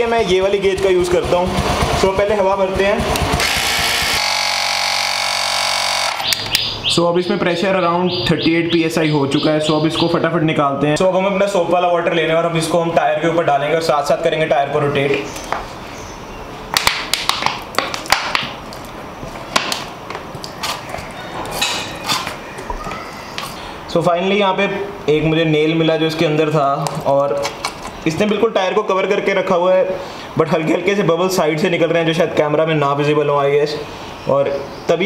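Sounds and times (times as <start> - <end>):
tyre inflator compressor humming: 1.0 - 6.4
sharp clicks: 5.4 - 6.8.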